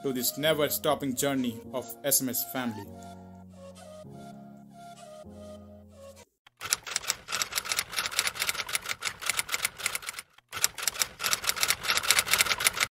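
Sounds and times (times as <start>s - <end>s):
typewriter keys clacking: 6.5s - 12.9s.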